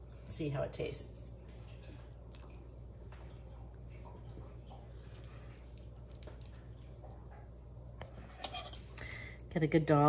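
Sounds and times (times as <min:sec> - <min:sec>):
low steady hum: 0:00.0 - 0:10.0
spoon clinking against dish: 0:08.2 - 0:09.3.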